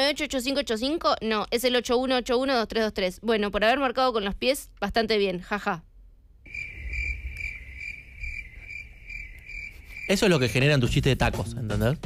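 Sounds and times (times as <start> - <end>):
cricket chirping sound effect: 6.5 - 10.6.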